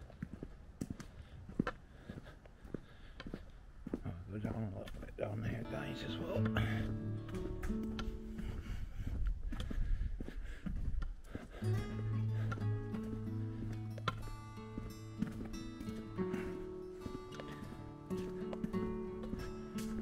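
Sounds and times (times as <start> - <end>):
music with long held notes: 5.6 - 8.6, 11.6 - 20.0.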